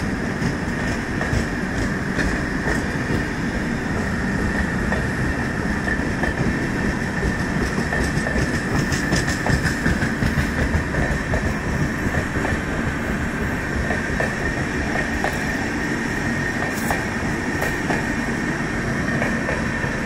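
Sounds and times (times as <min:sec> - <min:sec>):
train wheels clacking over rail joints: 0:00.0 - 0:18.2, 0:19.1 - 0:20.0
high whine of wheels on rails: 0:00.0 - 0:20.0
train rumble: 0:00.0 - 0:20.0.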